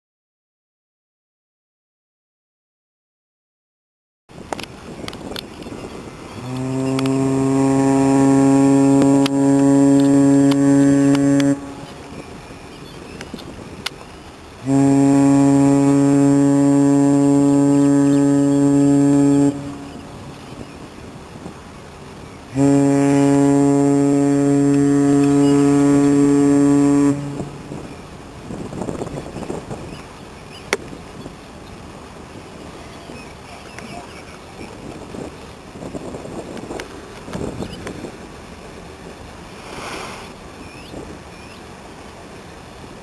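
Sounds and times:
ship's horn long blast: 6.3s - 12.5s, 14.6s - 30.5s.

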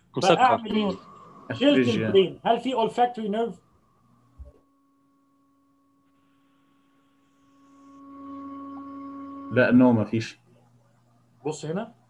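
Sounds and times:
steady pitched tone: 0.0s - 4.6s, 7.2s - 10.4s.

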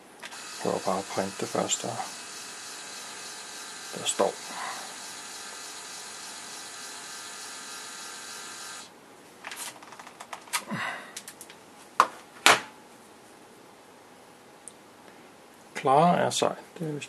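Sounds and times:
label printer whirring: 0.2s - 8.9s
rustling and handling: 9.3s - 10.6s.

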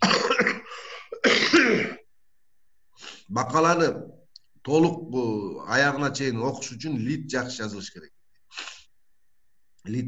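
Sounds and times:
man coughing: 0.0s - 2.0s.

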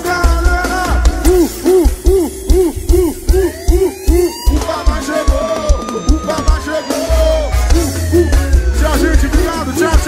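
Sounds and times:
heavy bass drum thumps: 0.1s - 6.7s
hooting tone rising and falling: 1.3s - 8.8s.

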